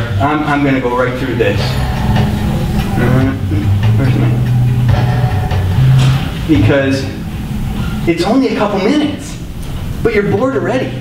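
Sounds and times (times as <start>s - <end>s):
low hum from speakers: 0.0s - 11.0s.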